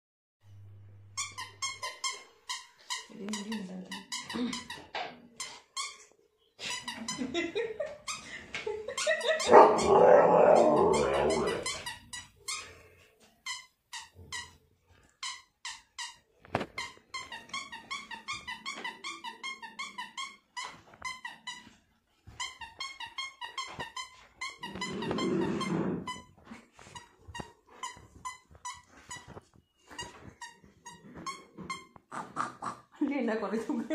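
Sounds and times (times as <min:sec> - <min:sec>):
dog toy squeaking: 0:01.1 - 0:07.2, 0:09.0 - 0:14.6, 0:15.2 - 0:21.7, 0:22.3 - 0:32.1.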